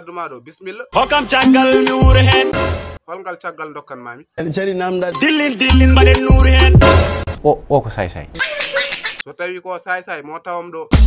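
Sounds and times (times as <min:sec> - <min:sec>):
person laughing: 0:08.4 - 0:09.3.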